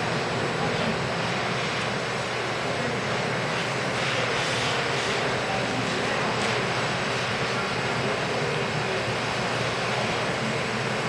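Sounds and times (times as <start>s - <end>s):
crowded indoor hall din: 0.0s - 11.0s.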